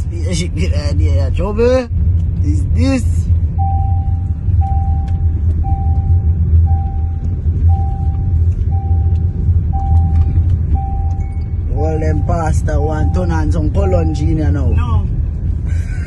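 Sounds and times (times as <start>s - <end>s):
low rumble of car driving: 0.0s - 16.0s
car warning chime beeping: 3.4s - 15.4s.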